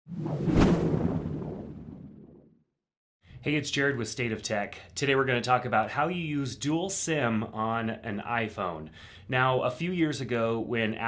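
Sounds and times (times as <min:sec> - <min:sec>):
deep swoosh: 0:00.1 - 0:02.3.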